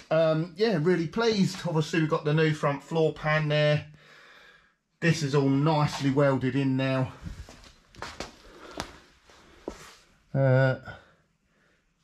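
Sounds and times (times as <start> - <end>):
footsteps and shuffling: 5.8 - 6.4, 7.0 - 10.1.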